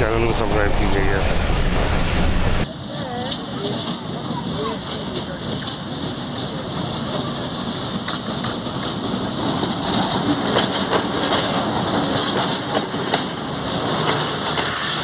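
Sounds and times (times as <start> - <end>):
diesel locomotive engine running: 0.0 - 15.0
train wheels clicking over rail joints: 3.2 - 15.0.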